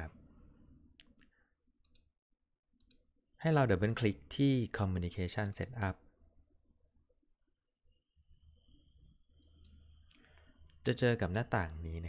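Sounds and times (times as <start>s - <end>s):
computer mouse clicks: 1.0s - 2.1s, 2.8s - 3.0s.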